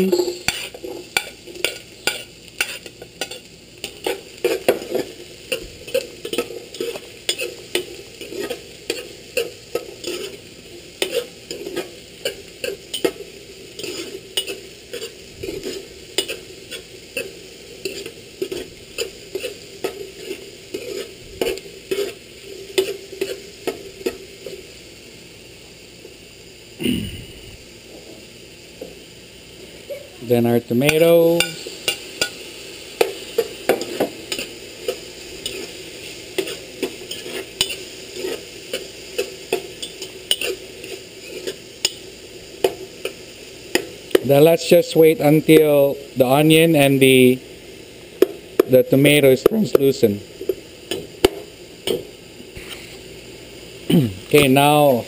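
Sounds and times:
metal spoon scraping a pan: 0.0s - 24.6s, 33.0s - 42.0s
onions sizzling in a frying pan: 0.0s - 55.0s.

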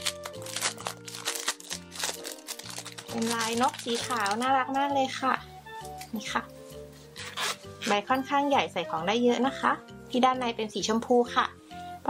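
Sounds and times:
background music: 0.0s - 12.0s
fabric pouch rubbing rustle: 7.0s - 8.0s.

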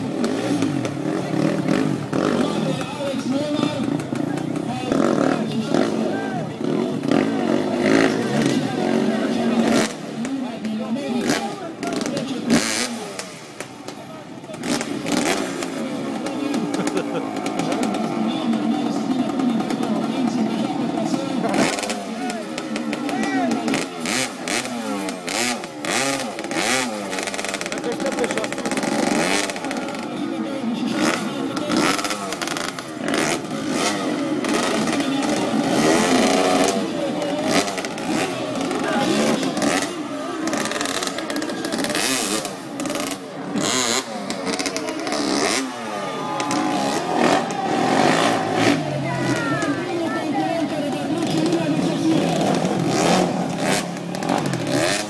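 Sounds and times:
crowd voices and shouting: 0.0s - 55.0s
motorcycle engine revving: 0.0s - 55.0s.

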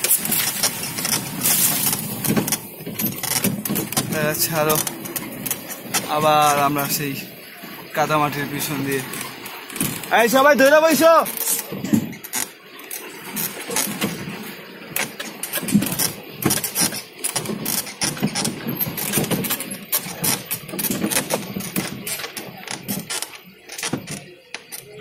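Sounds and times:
vehicle body rattling over bumps: 0.0s - 10.5s, 11.2s - 25.0s.

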